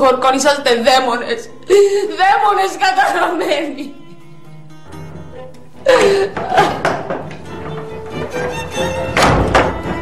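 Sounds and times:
heavy thud: 0:09.2 - 0:10.0.

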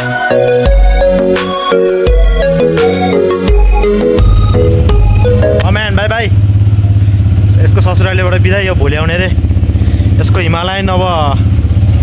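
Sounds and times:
motorcycle engine idling: 0:02.1 - 0:12.0.

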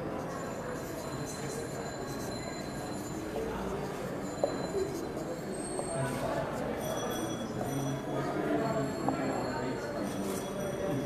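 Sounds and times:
marker squeaking on whiteboard: 0:00.2 - 0:03.2.

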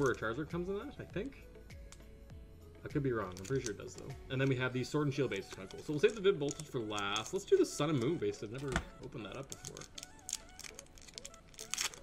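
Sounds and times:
foil wrapper crinkling: 0:03.2 - 0:12.0.

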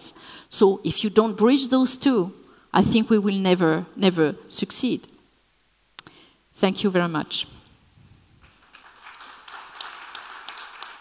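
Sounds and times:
audience applauding: 0:08.5 - 0:11.0.

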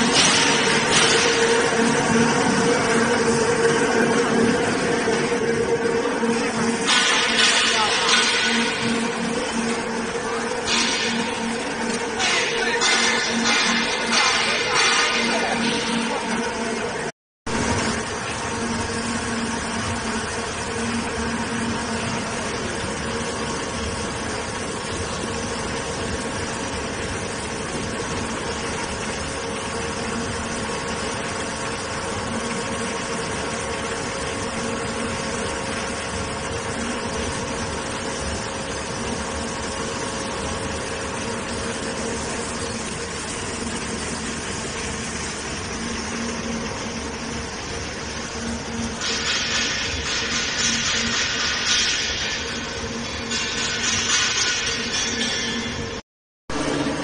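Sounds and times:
mill machine droning: 0:00.0 - 0:57.0.

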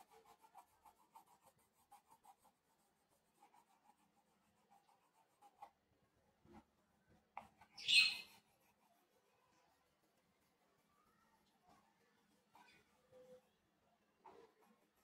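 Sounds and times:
pencil shading on paper: 0:00.0 - 0:05.8, 0:06.5 - 0:13.4, 0:14.2 - 0:15.0
scratchy pencil rub: 0:00.0 - 0:05.8, 0:07.3 - 0:12.9.

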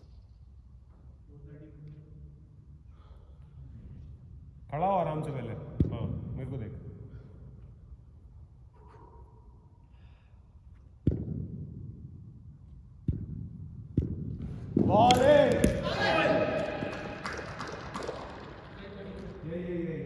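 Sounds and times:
cricket ball knocks: 0:14.7 - 0:18.5
men talking: 0:14.8 - 0:18.0, 0:18.7 - 0:20.0
men shouting loudly: 0:15.0 - 0:17.2.

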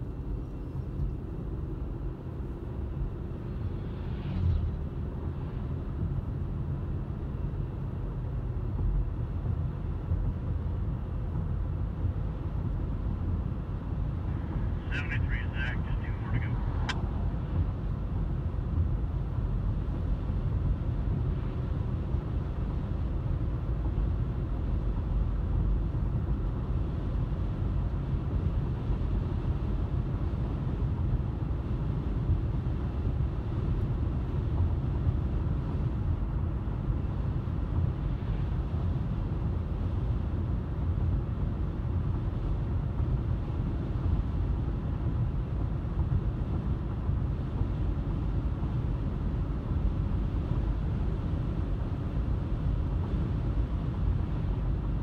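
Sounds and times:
car engine: 0:00.0 - 0:55.0
road and tyre rumble: 0:00.0 - 0:55.0.

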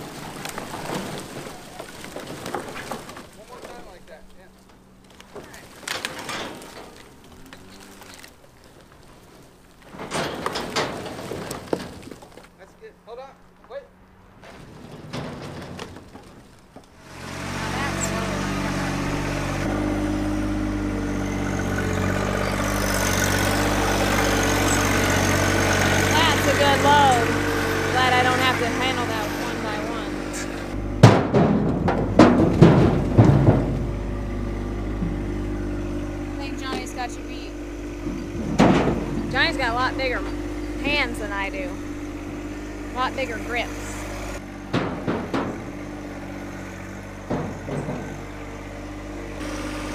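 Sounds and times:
loud clunks and knocks: 0:00.0 - 0:03.8, 0:04.6 - 0:12.6, 0:14.3 - 0:17.6, 0:20.8 - 0:37.1, 0:37.8 - 0:41.0, 0:43.6 - 0:49.9
tractor diesel engine running: 0:00.0 - 0:49.9
quiet knocks: 0:44.6 - 0:48.5.

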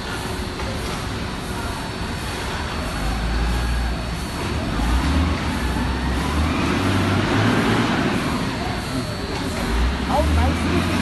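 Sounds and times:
conveyor machinery rumbling: 0:00.0 - 0:11.0.

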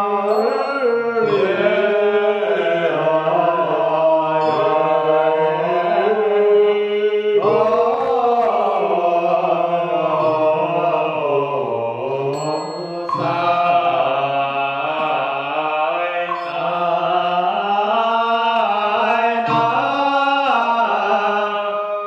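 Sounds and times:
liturgical chanting: 0:00.0 - 0:22.0.

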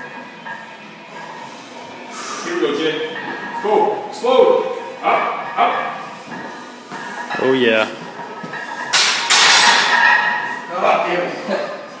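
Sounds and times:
barbell clanking in steel rack: 0:08.9 - 0:10.5.

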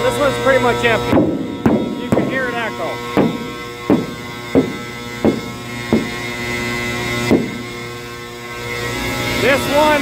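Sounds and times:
steady mechanical hum: 0:00.0 - 0:10.0
knocks on hollow steel silo: 0:01.0 - 0:06.5, 0:07.2 - 0:07.9.

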